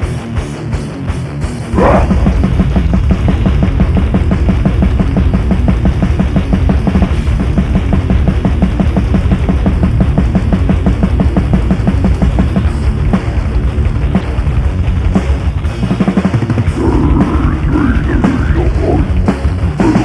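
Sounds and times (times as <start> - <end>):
distorted guitars: 0.0 - 20.0
metal band playing: 0.0 - 20.0
rapid double bass drumming: 0.0 - 20.0.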